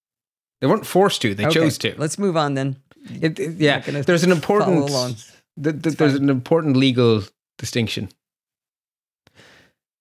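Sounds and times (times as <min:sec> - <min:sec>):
soft breath: 0:09.3 - 0:09.8.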